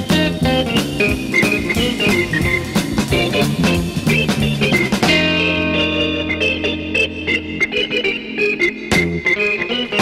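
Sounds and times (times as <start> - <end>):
bass line: 0.0 - 10.0
electric organ playing quick notes: 0.0 - 10.0.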